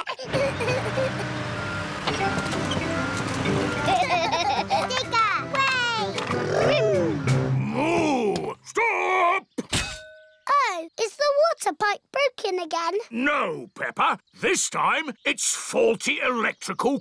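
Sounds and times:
low machine hum: 0:00.3 - 0:07.2
cartoon music: 0:00.4 - 0:08.0.

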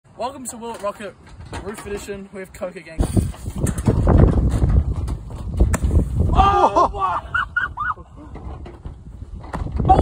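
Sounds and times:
footsteps on a metal roof: 0:03.1 - 0:06.2.

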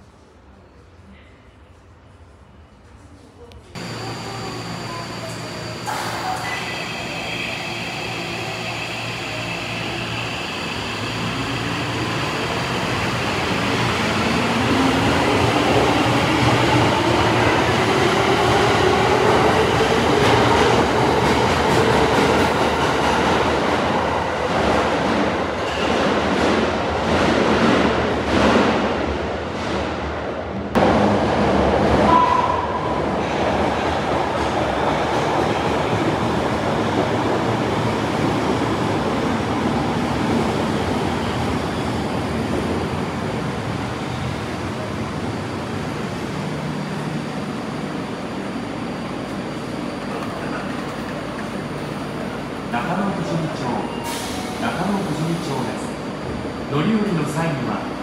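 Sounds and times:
brief high squeal: 0:03.8 - 0:09.6
subway traction motor whine: 0:03.8 - 0:19.8.

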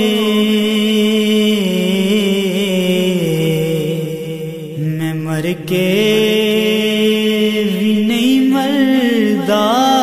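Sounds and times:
man singing long held notes: 0:00.0 - 0:10.0.

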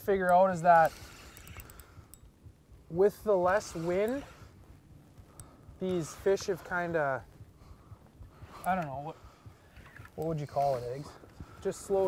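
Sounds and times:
low outdoor rumble: 0:00.0 - 0:12.0
faint light clicks: 0:00.2 - 0:12.0.

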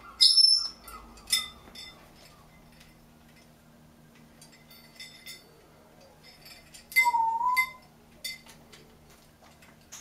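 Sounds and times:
parrot whistle: 0:00.2 - 0:00.8, 0:07.0 - 0:07.8
small bells clinking: 0:00.6 - 0:03.5, 0:04.4 - 0:08.5.

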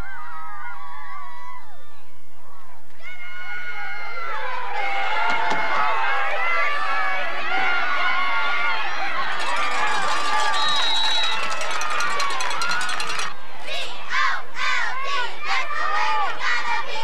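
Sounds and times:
crowd talking and shouting: 0:00.0 - 0:17.0
high whistle: 0:10.3 - 0:11.9.

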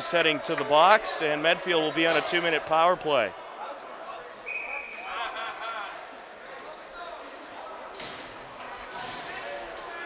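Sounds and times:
distant voices echoing in arena: 0:00.0 - 0:10.0.

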